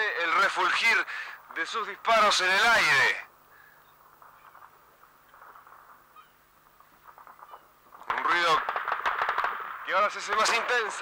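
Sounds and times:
anti-aircraft guns firing: 4.0s - 11.0s.

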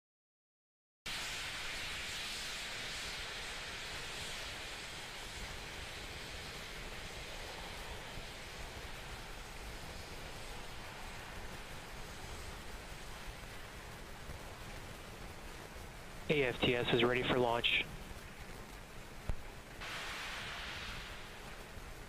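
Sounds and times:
steady outdoor hiss: 1.1s - 22.0s.

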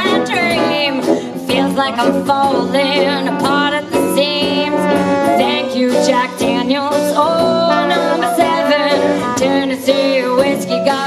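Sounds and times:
small jazz band playing: 0.0s - 11.0s
woman singing lead: 0.0s - 11.0s.

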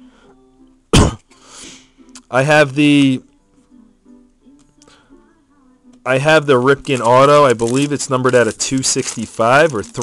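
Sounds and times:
man coughing: 1.0s - 1.2s
breathy exhale: 1.4s - 2.0s.

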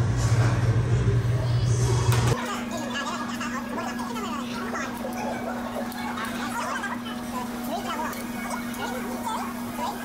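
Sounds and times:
indistinct background chatter: 1.4s - 10.0s.

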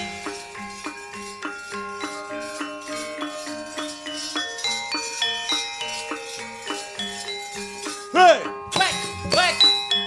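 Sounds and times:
gamelan metallophones and gongs: 0.0s - 10.0s.

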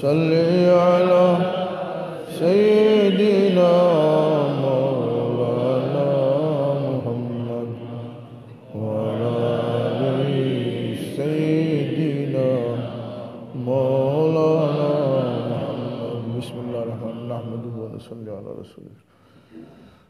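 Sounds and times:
man chanting through loudspeaker: 0.0s - 19.0s.

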